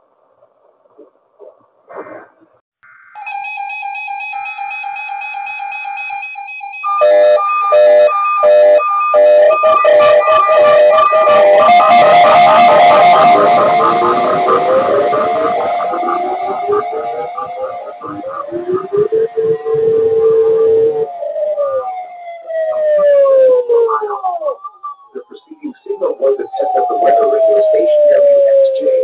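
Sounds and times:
beeping and gliding alarm tones: 3.0s - 29.0s
steady alert tone: 6.8s - 21.2s
pulsing beeps: 6.8s - 22.1s.

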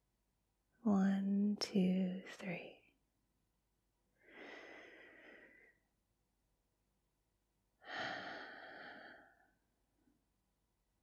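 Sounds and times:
woman's breathy exhale: 7.8s - 9.5s.

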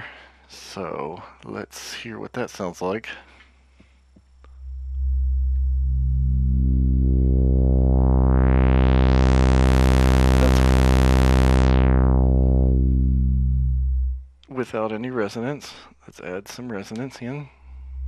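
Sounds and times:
synthesizer buzz filter sweep: 4.5s - 14.4s.

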